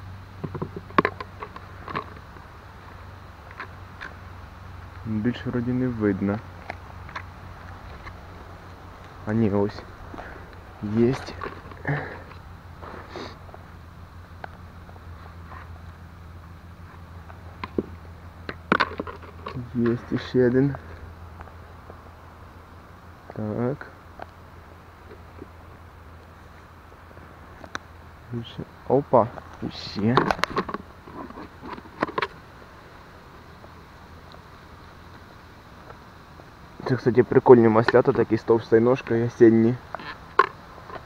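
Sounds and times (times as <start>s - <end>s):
faint outdoor background: 0.0s - 41.0s
low steady hum: 0.0s - 41.0s
leaf litter rustling: 6.3s - 13.8s.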